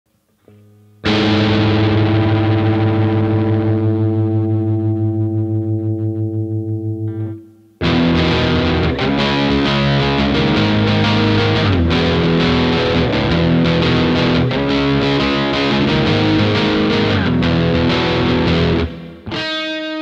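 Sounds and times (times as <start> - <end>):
low guitar chords riff: 0.5 - 20.0
distorted electric guitar chord: 0.6 - 20.0.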